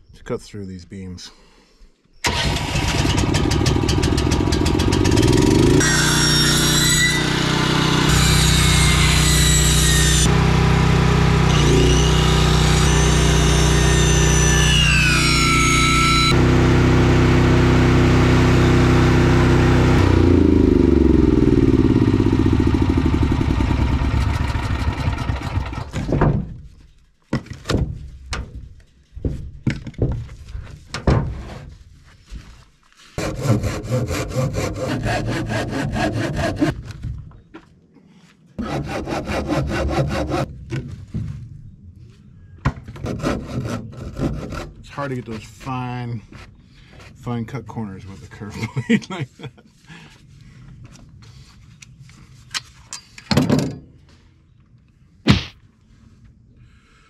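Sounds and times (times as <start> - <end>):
circular saw cutting wood: 2.9 - 25.9, 33.2 - 36.7, 38.6 - 40.5
hand saw sawing wood: 3.2 - 16.4, 33.1 - 36.8, 38.6 - 40.5, 43.0 - 47.2.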